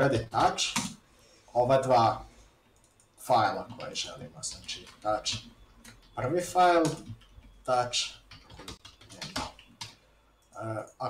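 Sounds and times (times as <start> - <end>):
computer keyboard typing: 0.2 - 1.0, 2.7 - 11.0.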